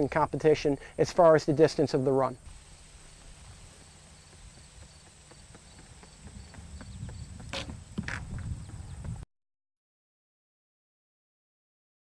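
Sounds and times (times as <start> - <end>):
running footsteps on pavement: 2.5 - 9.2
sharp shoe scuffs: 4.3 - 8.5.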